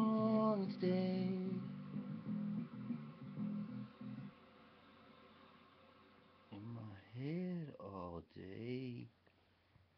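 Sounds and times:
acoustic guitar low notes: 0:00.0 - 0:05.3
faint hiss: 0:00.0 - 0:09.9.

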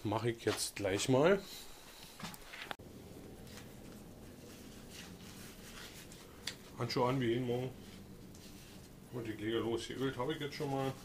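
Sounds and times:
low room noise: 0:00.0 - 0:11.0
gloves rubbing and rustling: 0:00.4 - 0:11.0.

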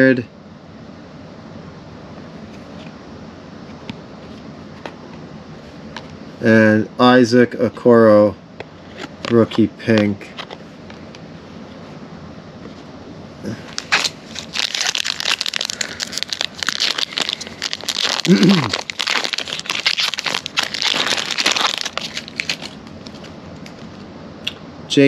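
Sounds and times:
foil pack crinkling and tearing: 0:13.5 - 0:23.8
short falling vocal sound: 0:18.3 - 0:18.7.

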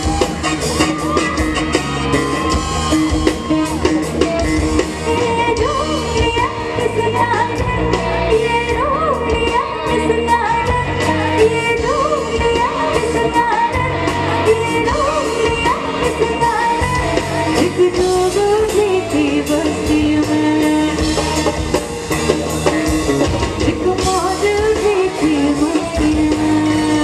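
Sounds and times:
amplified pop band: 0:00.0 - 0:27.0
woman singing into microphone: 0:05.0 - 0:21.6, 0:23.6 - 0:27.0.

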